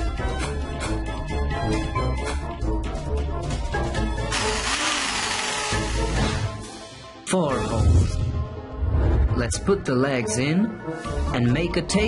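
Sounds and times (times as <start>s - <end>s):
background music: 0.0s - 12.0s
power drill buzz into wood: 4.3s - 6.5s.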